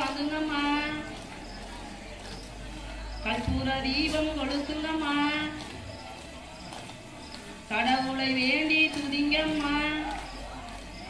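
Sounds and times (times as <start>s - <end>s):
rhythmic hand claps: 5.5s - 11.0s.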